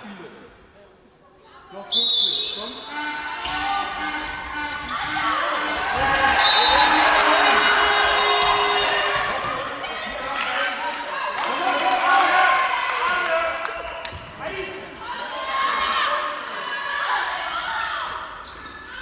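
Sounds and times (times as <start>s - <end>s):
referee's whistle: 1.9s - 9.0s
players shouting: 2.9s - 13.4s.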